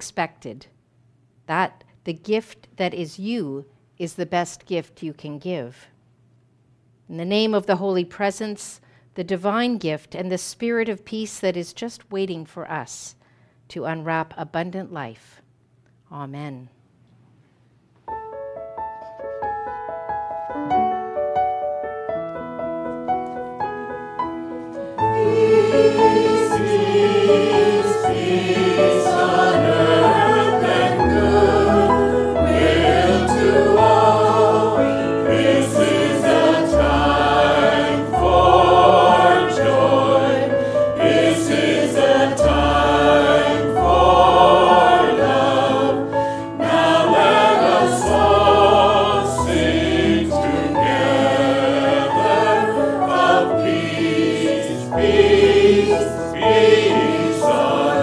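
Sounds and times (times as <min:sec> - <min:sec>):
choir singing: 0:25.0 - 0:58.0.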